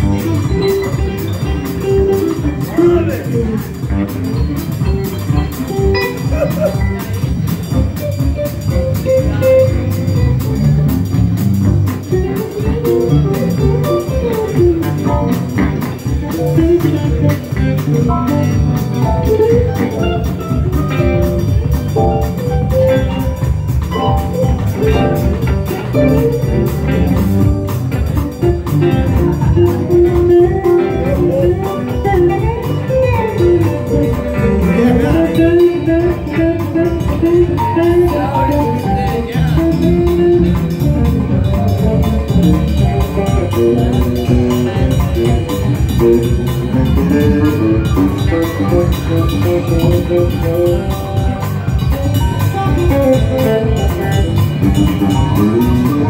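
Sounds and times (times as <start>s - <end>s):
bass guitar: 0.0s - 56.0s
drums: 0.0s - 56.0s
electric guitar lead with bends: 0.0s - 56.0s.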